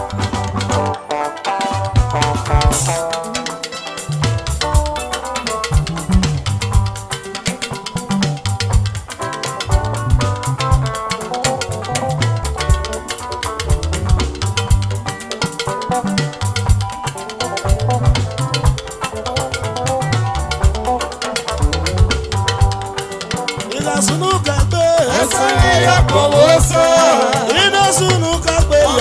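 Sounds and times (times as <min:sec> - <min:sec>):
bass guitar: 0:00.0 - 0:29.0
drum kit beat: 0:00.0 - 0:29.0
electric guitar lines: 0:00.0 - 0:29.0.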